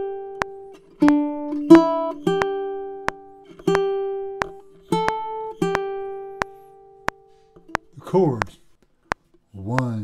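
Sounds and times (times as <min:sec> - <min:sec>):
ukulele chords ringing: 0:00.0 - 0:08.0
sharp click beat: 0:00.0 - 0:10.0.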